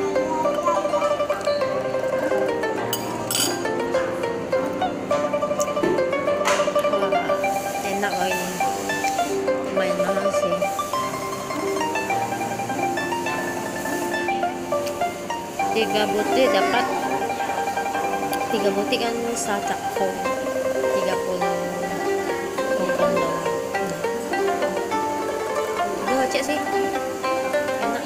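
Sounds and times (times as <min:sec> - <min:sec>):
background music melody: 0:00.0 - 0:28.0.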